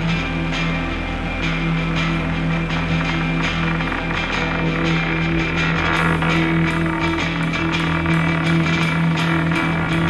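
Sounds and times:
electric guitar: 0.0s - 10.0s.

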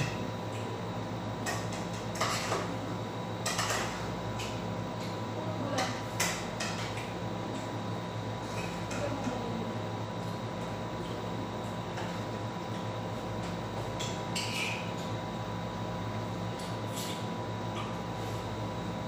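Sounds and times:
steady hum: 0.0s - 19.0s.

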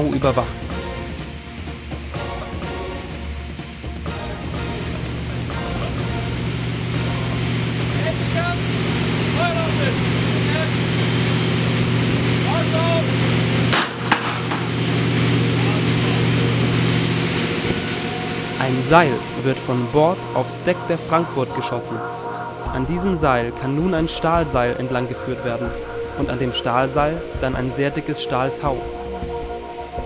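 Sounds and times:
low droning hum: 0.0s - 30.0s.

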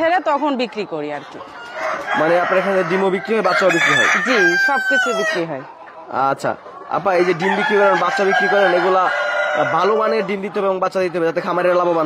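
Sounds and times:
chickens clucking: 0.0s - 12.0s
rooster crowing: 1.6s - 5.5s, 7.2s - 10.2s.

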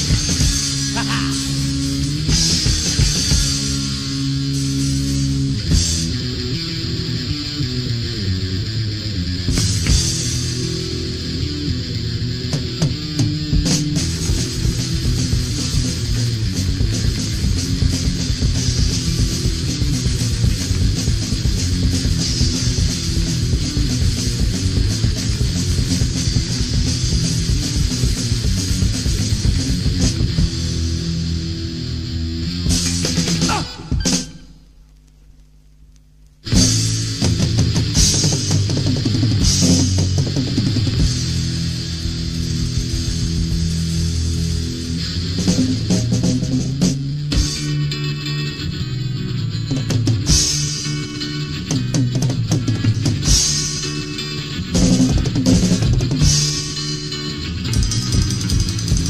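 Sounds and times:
punk rock band playing: 0.0s - 34.7s, 36.4s - 59.0s.

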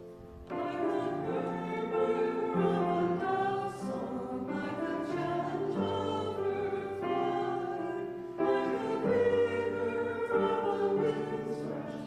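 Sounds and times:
congregation singing a hymn: 0.0s - 12.0s
piano accompaniment: 0.0s - 12.0s.

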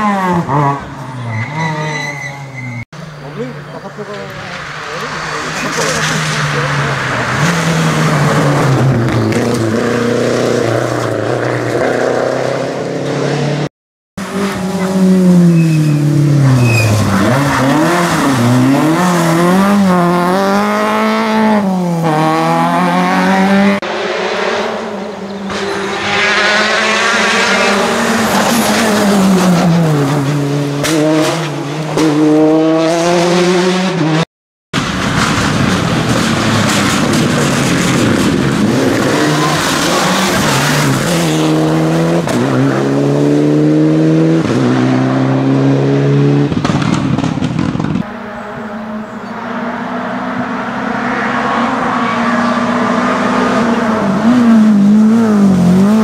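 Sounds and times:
rally car engine at full throttle: 0.0s - 34.2s, 34.8s - 56.0s.

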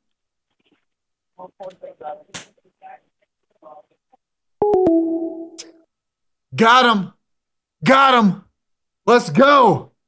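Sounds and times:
steady two-note tone: 4.6s - 5.8s.

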